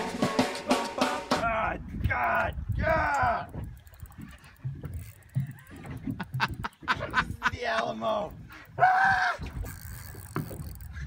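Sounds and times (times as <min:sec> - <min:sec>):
wind on microphone: 0:01.4 - 0:11.0.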